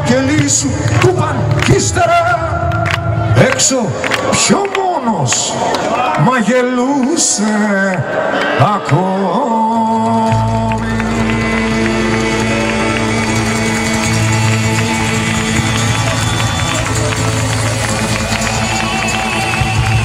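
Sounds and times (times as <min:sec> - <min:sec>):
loud bass line: 0:10.0 - 0:20.0
rock band playing: 0:10.8 - 0:20.0.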